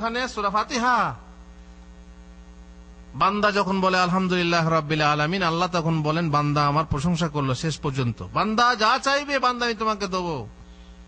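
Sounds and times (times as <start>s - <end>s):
man's voice: 0.0s - 1.2s, 3.2s - 10.5s
electrical mains hum: 0.0s - 11.0s.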